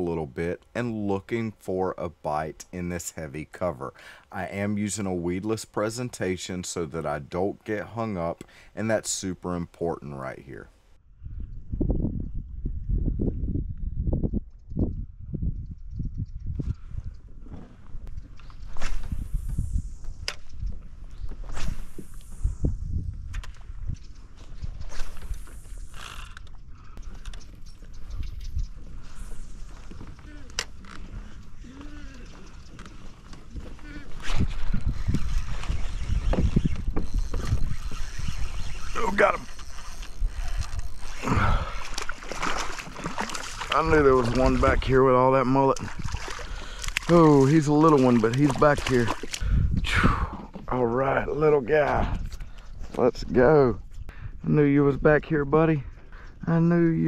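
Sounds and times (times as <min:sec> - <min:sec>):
wind on microphone: 0:11.0 - 0:57.0
grass swishing against kayak hull: 0:32.8 - 0:45.0.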